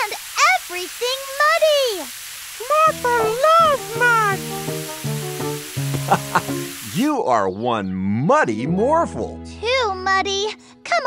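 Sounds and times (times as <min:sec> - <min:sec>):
water spraying from garden hose: 0:00.0 - 0:07.1
background music with held notes: 0:02.7 - 0:11.0.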